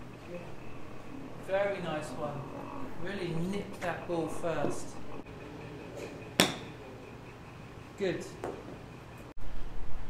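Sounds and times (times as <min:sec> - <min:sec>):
golf club striking ball: 0:06.4 - 0:06.8.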